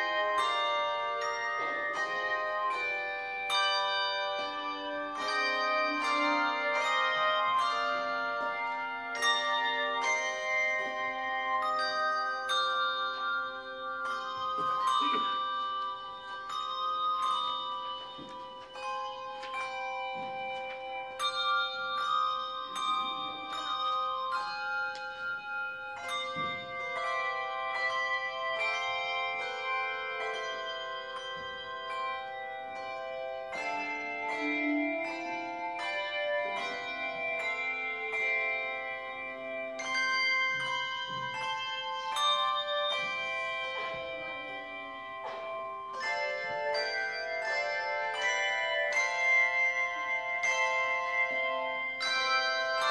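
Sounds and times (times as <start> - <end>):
handbell choir playing: 0.0 - 52.9.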